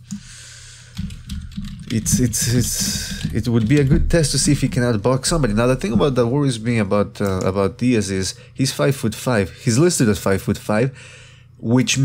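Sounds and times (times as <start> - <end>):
keyboard typing: 0.9 - 6.2.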